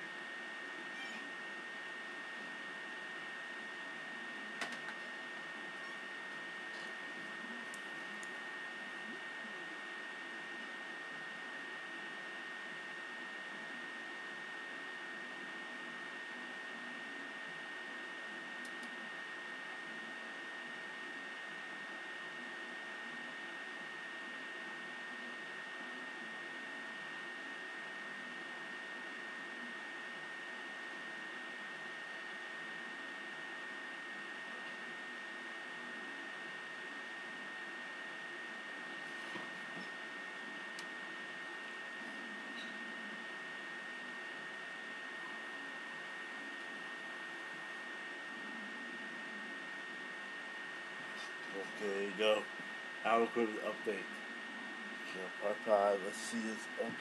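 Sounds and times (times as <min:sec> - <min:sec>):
high steady whine: 0:00.0 - 0:57.0.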